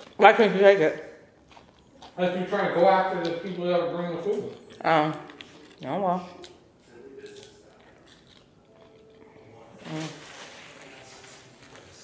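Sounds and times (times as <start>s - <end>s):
person chewing: 1.3s - 10.1s.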